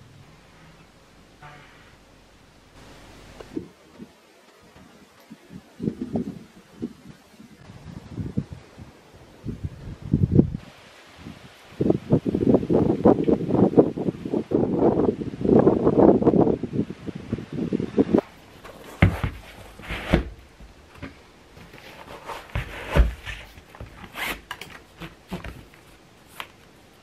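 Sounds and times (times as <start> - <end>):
wind buffeting microphone: 3.5 - 18.2.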